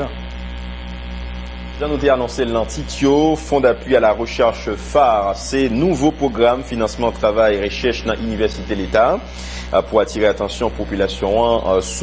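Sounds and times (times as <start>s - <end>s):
electrical mains hum: 0.0s - 12.0s
person speaking: 1.8s - 12.0s.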